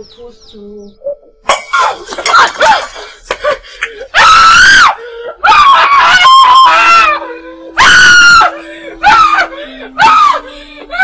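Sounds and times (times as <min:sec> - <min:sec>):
woman screaming: 0:04.1 - 0:11.0.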